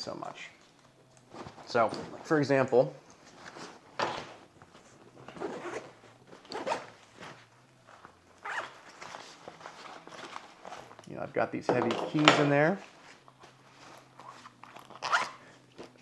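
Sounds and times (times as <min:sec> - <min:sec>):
nylon fabric rustling: 0:01.2 - 0:11.0, 0:12.6 - 0:16.0
backpack zipper pulled: 0:05.2 - 0:07.0, 0:08.4 - 0:08.8, 0:14.0 - 0:15.4.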